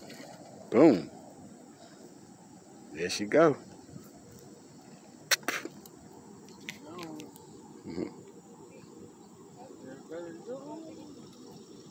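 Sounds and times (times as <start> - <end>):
insects droning: 0.0 - 11.9.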